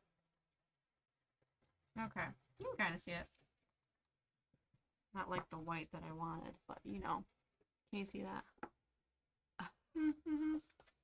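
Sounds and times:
woman humming: 9.6s - 10.9s.

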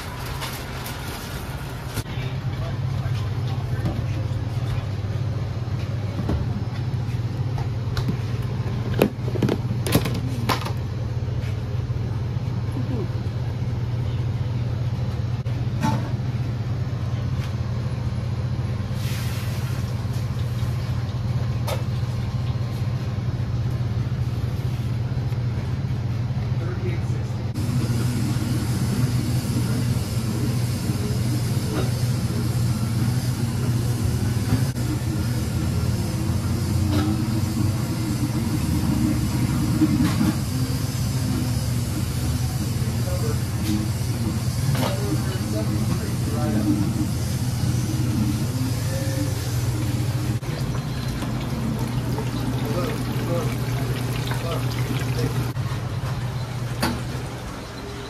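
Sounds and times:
kitchen equipment humming: 0.0s - 58.0s.

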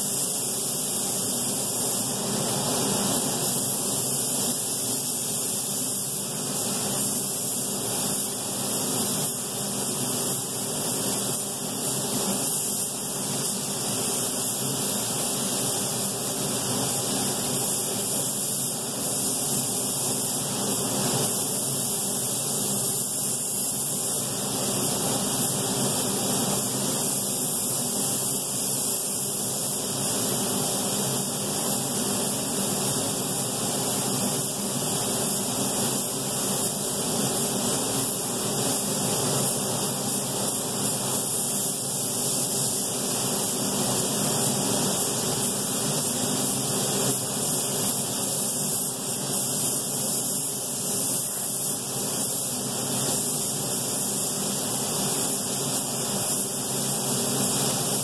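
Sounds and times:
exhaust fan rushing hiss: 0.0s - 58.0s.

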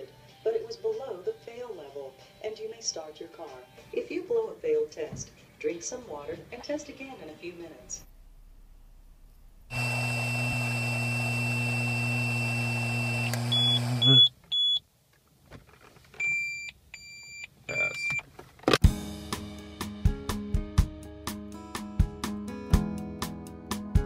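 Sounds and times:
device beeps: 12.2s - 14.8s, 16.2s - 18.2s.

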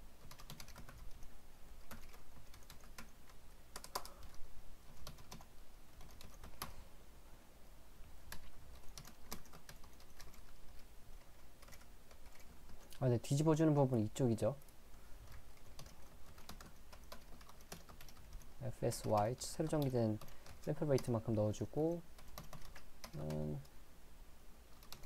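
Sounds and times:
typing on keyboard: 0.2s - 6.8s, 8.3s - 12.9s, 15.3s - 21.1s, 22.1s - 23.7s, 24.7s - 25.0s.

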